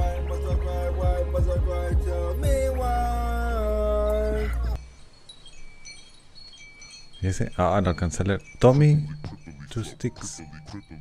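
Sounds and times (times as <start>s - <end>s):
high bell-like chiming: 2.4s - 11.0s.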